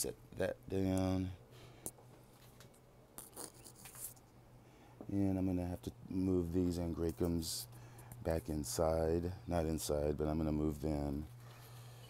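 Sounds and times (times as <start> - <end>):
faint rubbing and rustling: 2.1 - 4.4.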